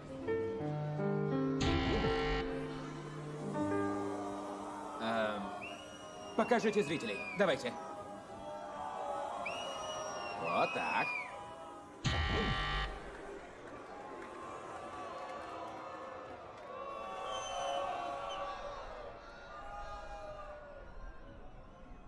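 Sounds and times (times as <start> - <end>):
soft music: 0.0 - 7.2
harsh buzzer: 1.6 - 3.0, 12.1 - 13.2
crowd whooping and whistling: 3.9 - 22.0.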